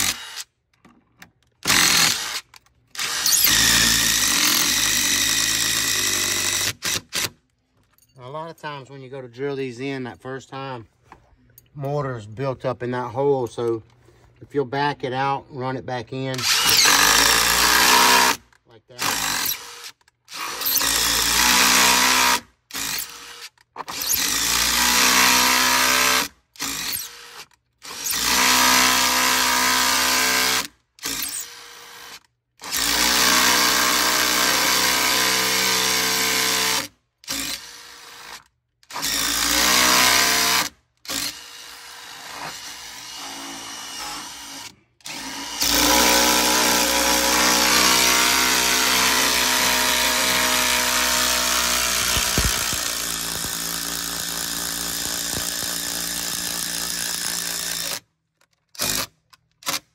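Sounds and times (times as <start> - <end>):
impact driver bursts: 16.4 - 18.4, 32.7 - 58.0.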